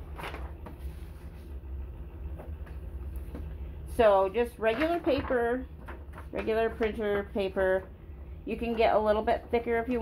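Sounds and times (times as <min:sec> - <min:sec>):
paper rustling: 0:00.0 - 0:01.6
steady low hum: 0:00.0 - 0:10.0.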